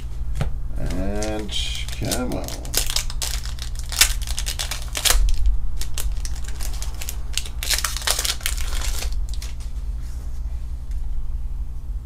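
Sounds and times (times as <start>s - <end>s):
low hum: 0.0s - 12.0s
foil wrapper crinkling and tearing: 0.8s - 9.7s.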